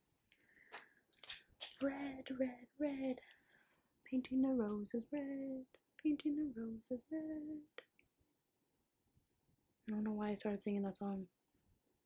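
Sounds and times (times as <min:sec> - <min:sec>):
woman singing softly: 0:04.1 - 0:07.9.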